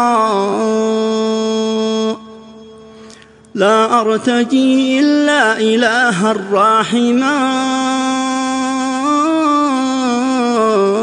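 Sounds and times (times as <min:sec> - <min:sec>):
man chanting a hymn: 0:03.5 - 0:11.0.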